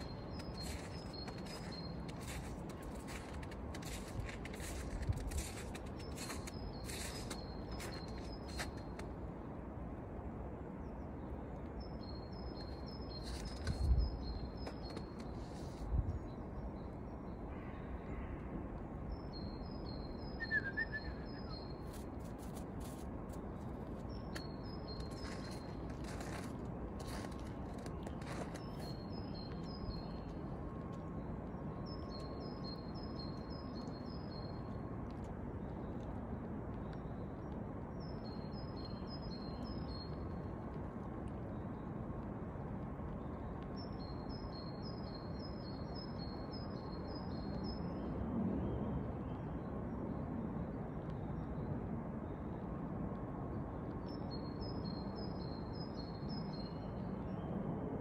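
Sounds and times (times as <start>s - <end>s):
songbird singing high notes: 20.2s - 21.8s.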